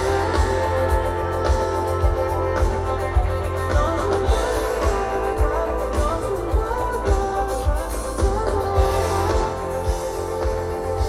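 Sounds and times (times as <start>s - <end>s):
live pop-rock band playing: 0.0s - 11.0s
person singing lead vocal: 0.0s - 11.0s.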